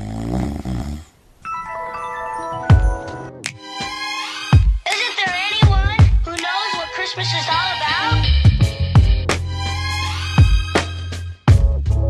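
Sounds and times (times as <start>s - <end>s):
person snoring: 0.0s - 1.2s
chime-like music tones: 1.4s - 3.4s.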